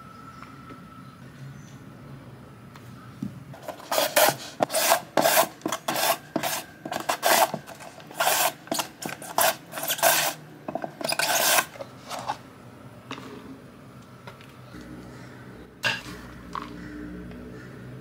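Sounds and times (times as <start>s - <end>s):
carrot cut on julienne slicer: 3.6s - 10.4s, 11.0s - 11.8s.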